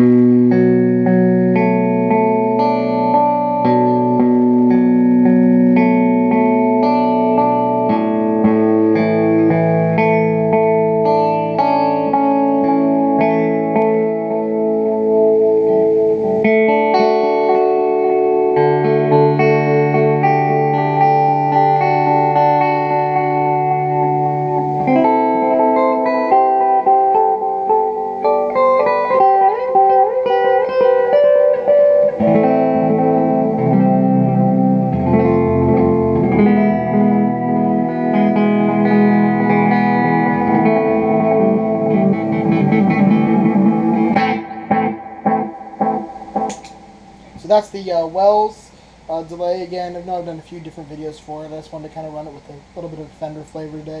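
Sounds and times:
electric guitar with delay: 0.0 - 54.0.

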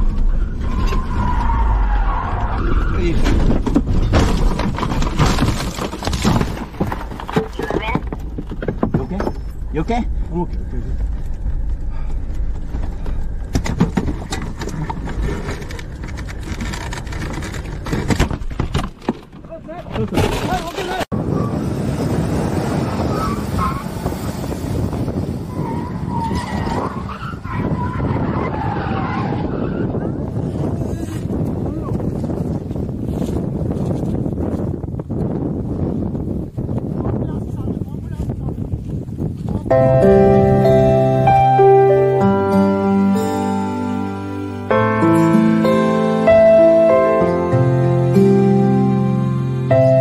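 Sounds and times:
tyres skidding on dirt: 0.0 - 43.9
knocks and rattles in cabin: 3.3 - 9.6
low steady rumble: 9.3 - 17.9.

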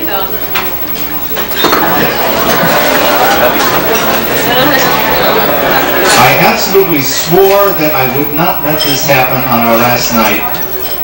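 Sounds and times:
murmured conversation: 0.0 - 11.0
tableware clinking: 1.0 - 6.5.

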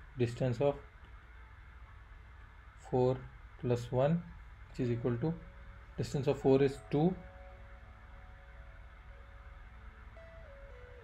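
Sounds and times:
faint steady tones: 0.0 - 11.0
low steady hum: 0.0 - 11.0.

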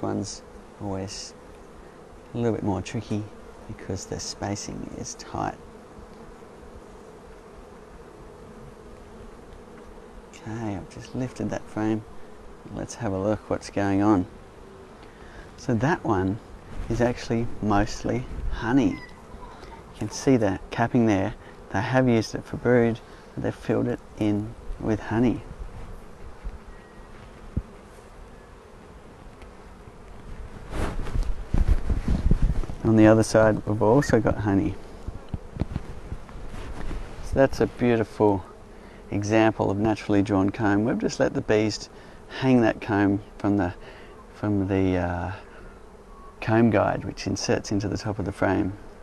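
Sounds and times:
honeybees buzzing: 0.0 - 49.0
bumps and rustling: 29.2 - 34.3, 35.0 - 38.0.

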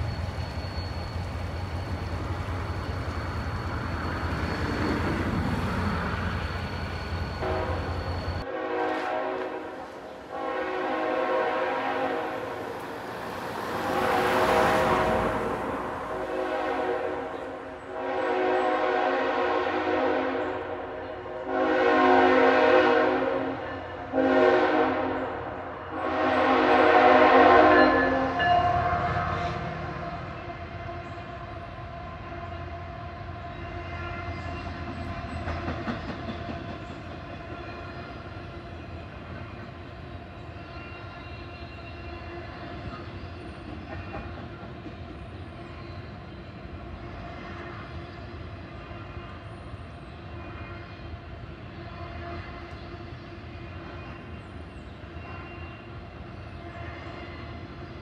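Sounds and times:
train cars rumbling over crossing: 0.0 - 58.0
locomotive air horn blasts: 7.3 - 12.6, 13.6 - 29.7.

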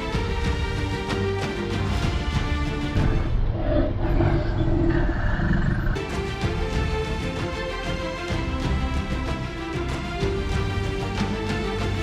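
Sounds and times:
dinosaur roar: 3.2 - 6.0.

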